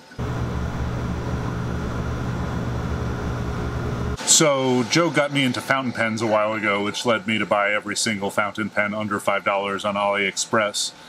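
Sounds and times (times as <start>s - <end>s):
laser cutter humming: 0.0s - 4.4s.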